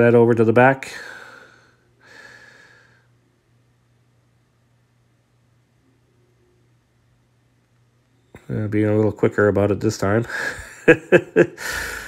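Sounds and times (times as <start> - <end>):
faint steady low hum: 0.0 - 12.0
person breathing out through nose: 1.0 - 3.1, 11.6 - 12.0.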